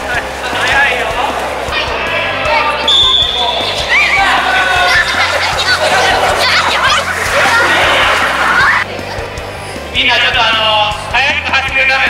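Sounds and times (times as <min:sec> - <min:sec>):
background music: 0:00.0 - 0:12.0
children shouting: 0:01.6 - 0:09.6
high whistle blast: 0:02.9 - 0:03.7.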